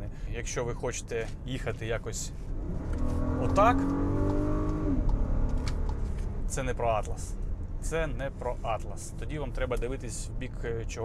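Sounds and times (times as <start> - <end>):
car engine revving: 2.5 - 6.6.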